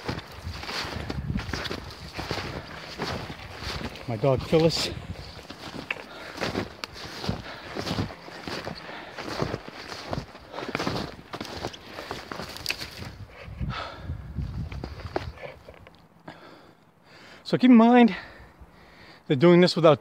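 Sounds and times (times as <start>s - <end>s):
jacket rustling: 0.0s - 13.1s
footsteps in snow: 0.0s - 13.5s.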